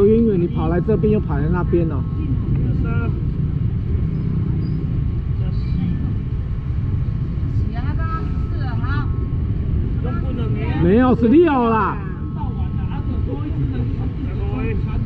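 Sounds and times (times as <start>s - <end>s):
faint crowd voices: 0.0s - 15.0s
street market rumble: 0.0s - 15.0s.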